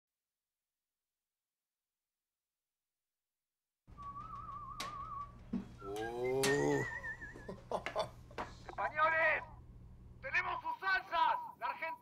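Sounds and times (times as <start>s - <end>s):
person whistling with vibrato: 4.0s - 7.6s
person speaking: 5.8s - 6.9s.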